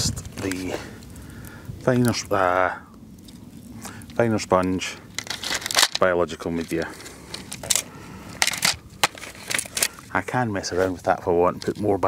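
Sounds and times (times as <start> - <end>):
plastic crunching rustles: 5.1 - 11.9.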